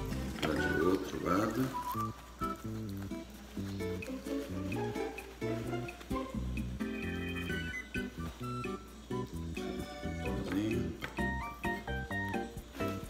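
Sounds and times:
bouncy background music: 0.0s - 13.0s.

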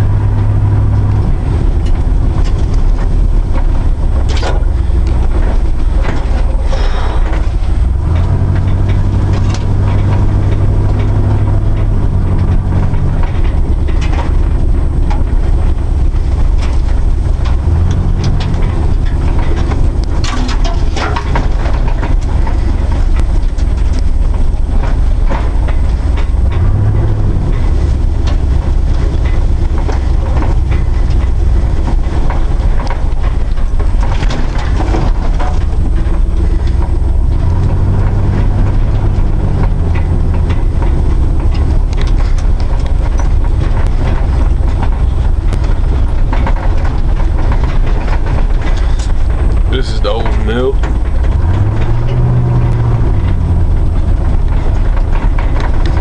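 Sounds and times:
knocks and rattles: 0.0s - 56.0s
truck engine and drivetrain noise: 0.0s - 56.0s.

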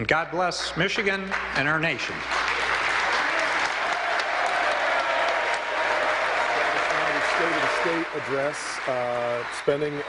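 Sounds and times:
crowd applauding: 0.5s - 10.0s.

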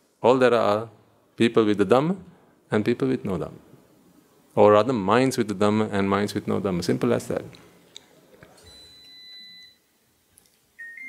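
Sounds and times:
faint steady electronic tone: 8.6s - 11.0s.

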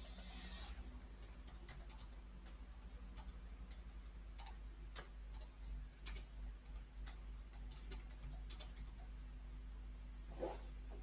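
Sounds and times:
faint clicks and ticks: 0.0s - 9.2s
low electrical hum: 0.0s - 11.0s.

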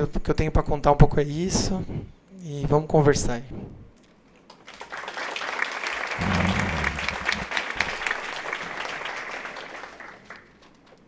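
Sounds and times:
audience applause: 4.7s - 10.5s.

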